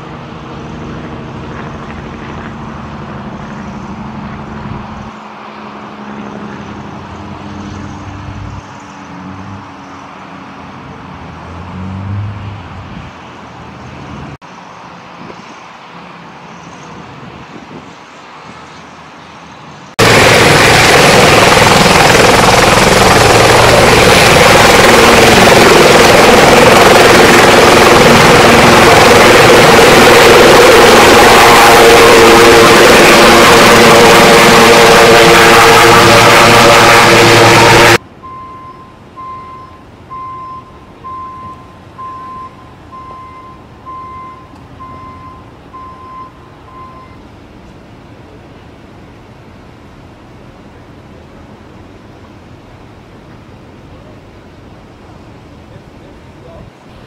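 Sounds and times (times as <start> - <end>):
helicopter turbines and rotor: 0.0 - 8.2, 20.0 - 38.0
short high beep: 38.2 - 47.2.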